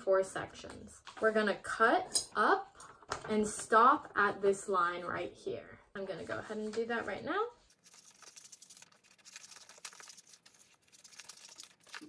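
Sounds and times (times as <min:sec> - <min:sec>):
paper rustling: 0:06.4 - 0:12.0.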